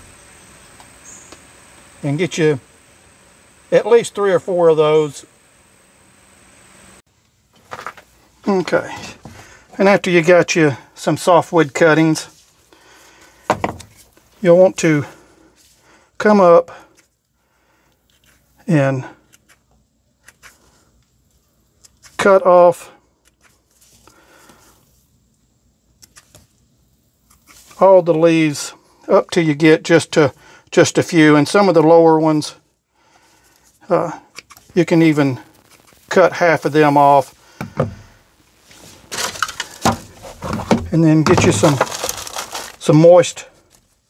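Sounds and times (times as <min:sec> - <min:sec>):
sharp knock of object set down: 0:13.5 - 0:13.9
rustling of plant cuttings: 0:33.2 - 0:44.0.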